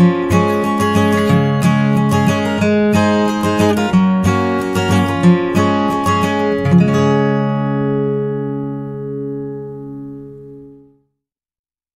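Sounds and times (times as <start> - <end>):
held guitar chord ringing: 0.0 - 11.0.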